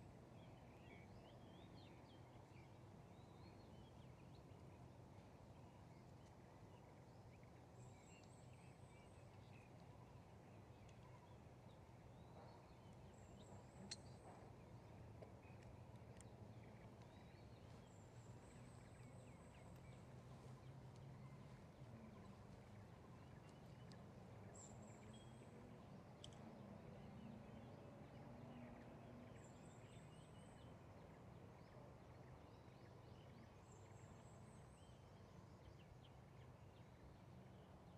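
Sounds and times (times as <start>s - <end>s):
low steady hum: 0.0s - 37.9s
faint tick: 8.0s - 10.0s, 10.7s - 11.1s, 15.2s - 17.2s, 23.4s - 24.1s, 26.1s - 26.5s.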